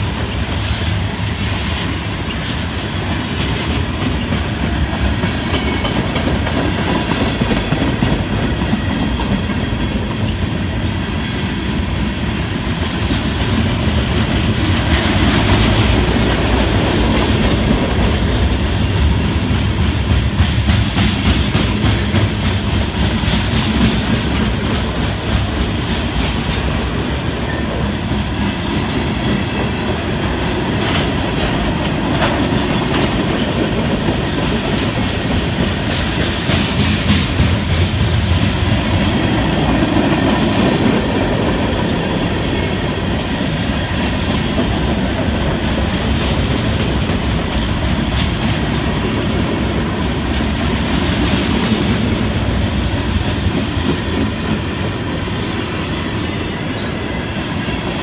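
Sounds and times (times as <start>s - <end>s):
steel wheels rumbling on rail: 0.0s - 58.0s.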